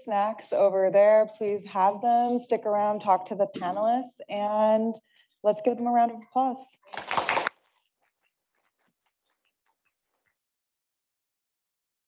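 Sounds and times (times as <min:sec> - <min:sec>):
audience clapping: 0:06.9 - 0:07.6.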